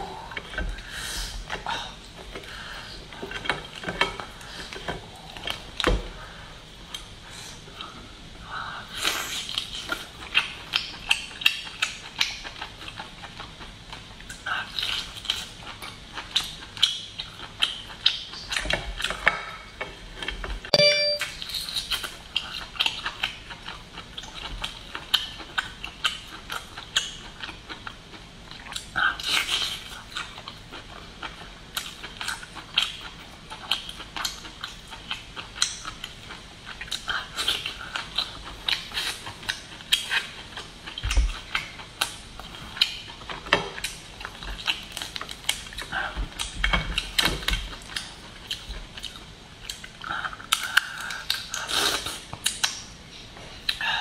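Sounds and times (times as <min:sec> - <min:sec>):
brief tone: 0:20.7 - 0:21.4.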